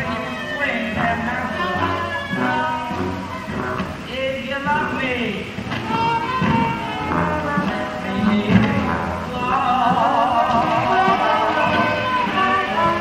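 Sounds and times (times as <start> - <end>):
pit orchestra playing: 0.0 - 13.0
voices: 0.0 - 13.0.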